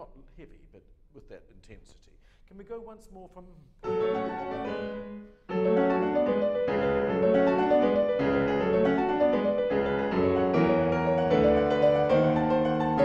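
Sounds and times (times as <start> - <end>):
solo classical piano: 3.8 - 13.0.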